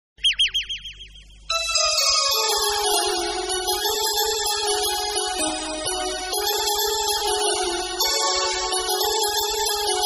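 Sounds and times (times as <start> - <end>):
electronic chirp effect: 0.2 - 2.0
synthesizer music: 0.8 - 10.0.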